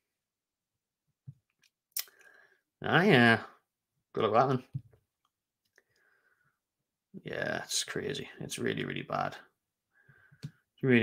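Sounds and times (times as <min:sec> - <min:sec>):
man speaking: 0:02.8 - 0:04.8, 0:07.2 - 0:09.5, 0:10.8 - 0:11.0.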